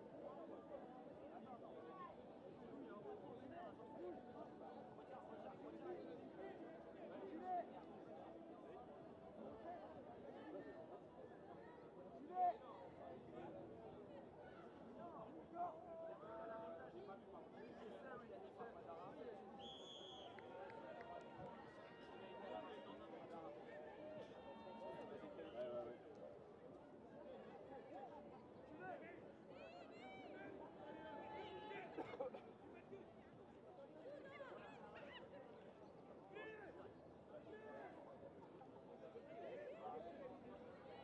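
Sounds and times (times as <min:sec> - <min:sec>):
distant chatter of many voices: 0:00.0 - 0:41.0.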